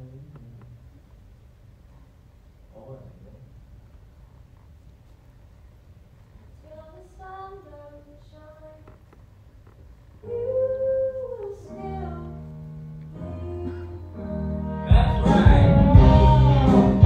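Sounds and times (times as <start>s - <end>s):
low bass line: 11.9s - 17.0s
person singing: 13.2s - 17.0s.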